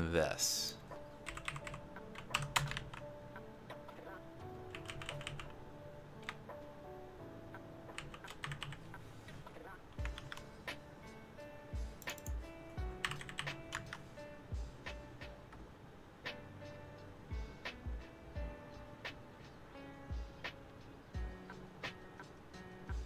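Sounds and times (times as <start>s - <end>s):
keyboard typing: 1.2s - 3.1s, 4.6s - 5.6s, 6.2s - 6.4s, 7.9s - 10.5s, 12.0s - 14.0s.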